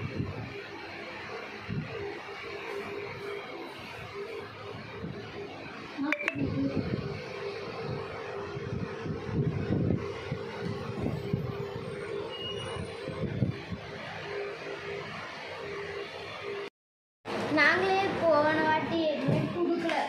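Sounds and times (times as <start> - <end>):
steady hum: 0.0 - 16.7.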